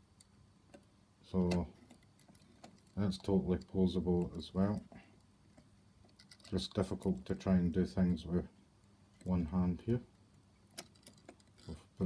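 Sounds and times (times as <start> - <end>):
light clicks of small toy parts: 0.2 - 7.2.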